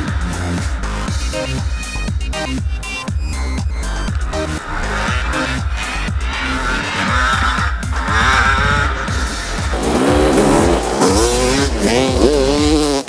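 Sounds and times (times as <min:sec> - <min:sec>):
electronic dance music: 0:00.0 - 0:13.0
dirt bike engine revving: 0:03.3 - 0:13.0.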